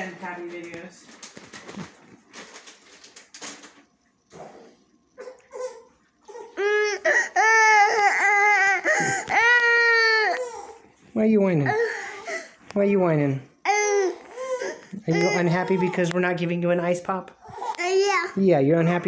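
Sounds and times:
toddler crying: 5.5s - 10.8s, 13.6s - 16.1s, 17.4s - 18.4s.

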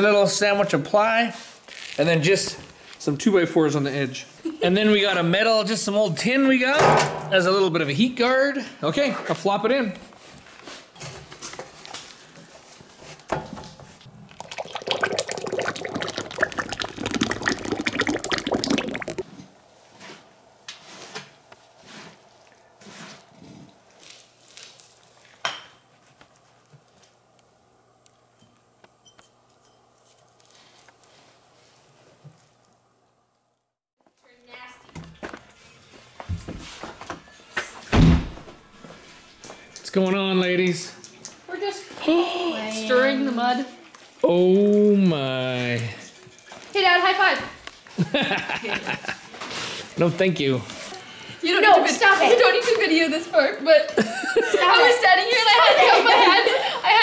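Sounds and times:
wet handling noise: 13.9s - 19.4s.

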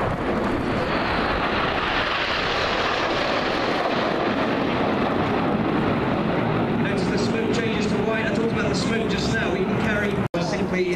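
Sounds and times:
jets flying past overhead: 0.0s - 10.8s.

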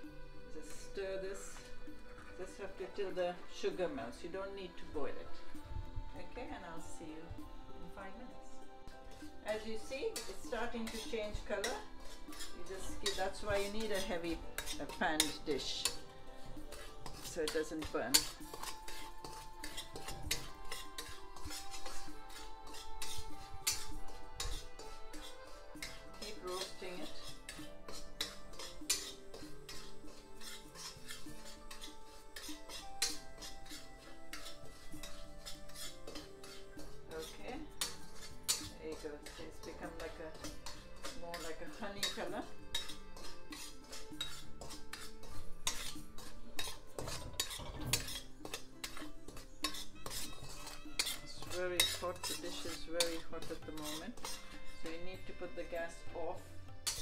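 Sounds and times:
soft background music: 0.0s - 57.0s
metal spatula scraping metal pan: 0.5s - 5.5s, 6.2s - 57.0s.

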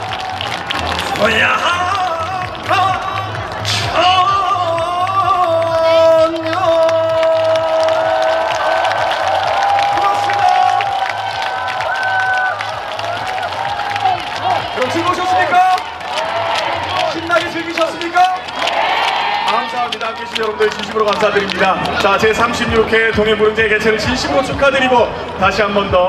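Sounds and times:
crowd clapping and cheering: 0.0s - 26.0s
man singing through pa: 3.9s - 8.4s.

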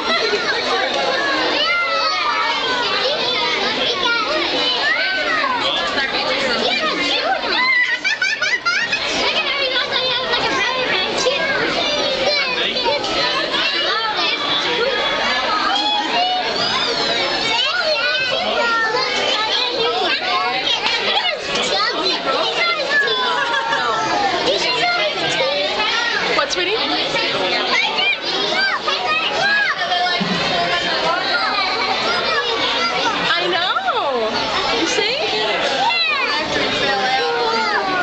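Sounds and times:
children chattering: 0.0s - 38.0s.

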